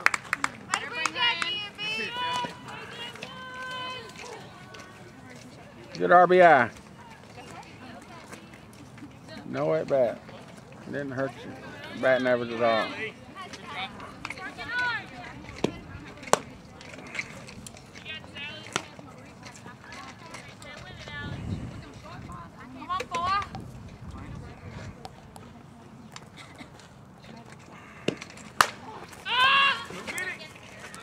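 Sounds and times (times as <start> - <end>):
girls calling out and cheering: 0.7 - 5.0, 12.6 - 15.2, 22.1 - 23.6, 29.2 - 31.0
loud shout of voices: 0.8 - 4.9, 28.9 - 30.4.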